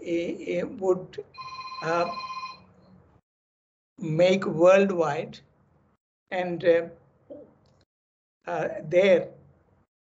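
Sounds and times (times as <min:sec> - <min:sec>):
man speaking: 0:00.0 - 0:02.2
electronic ringing tone: 0:01.4 - 0:02.7.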